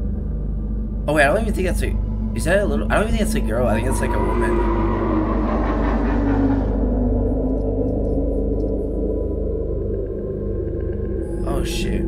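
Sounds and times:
low steady drone: 0.0s - 12.0s
gong-like ringing tones: 2.0s - 12.0s.

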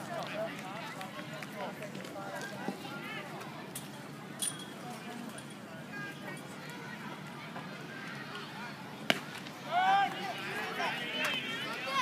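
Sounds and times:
spectators shouting and cheering: 5.9s - 12.0s
bat cracking ball: 9.0s - 9.5s.

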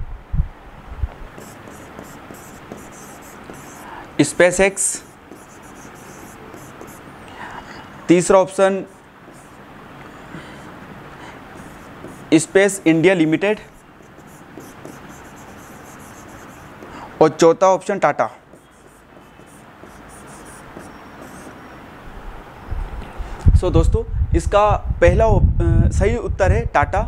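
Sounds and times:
stylus scratching on touchscreen: 1.4s - 7.2s, 8.8s - 10.7s, 11.5s - 17.1s, 18.5s - 21.8s.

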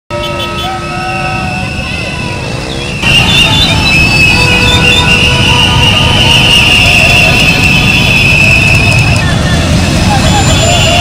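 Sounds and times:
crowd shouting: 0.1s - 11.0s.

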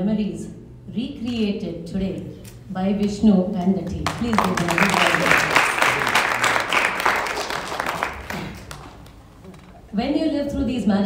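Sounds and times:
audience applauding: 4.0s - 9.2s.

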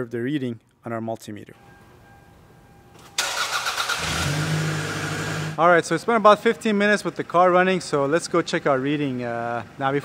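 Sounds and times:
starter motor cranking engine: 3.2s - 5.6s.

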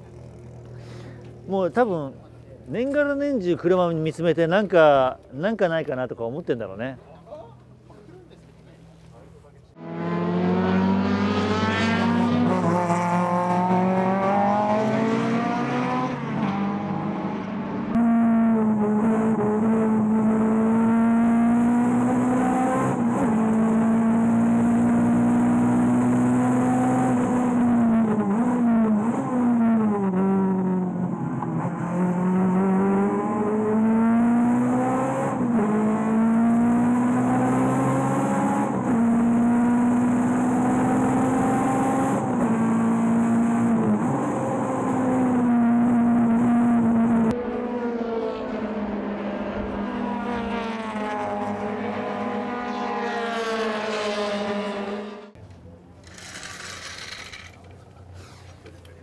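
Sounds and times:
car engine from trackside: 0.0s - 59.0s
race car engine revving: 9.7s - 55.4s.

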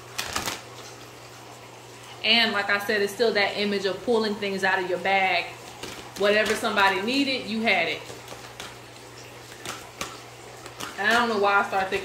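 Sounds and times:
playing cards rustling: 0.0s - 1.2s, 5.6s - 12.0s
faint steady hum: 0.0s - 12.0s.

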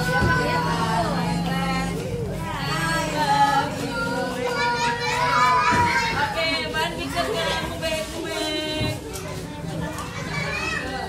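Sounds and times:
children calling and chattering: 0.0s - 11.0s
long held high child voice: 3.5s - 6.4s, 9.1s - 11.0s.

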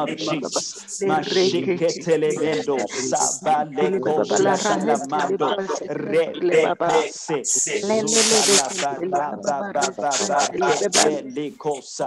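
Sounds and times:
person praying rapidly: 0.0s - 12.0s.

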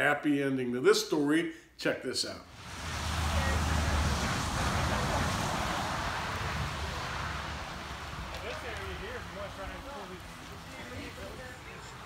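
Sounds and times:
rushing outdoor noise: 2.5s - 12.0s.

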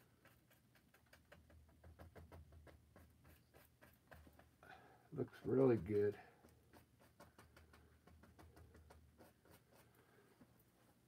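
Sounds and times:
paintbrush scratching on canvas: 0.0s - 4.6s, 5.2s - 11.0s.

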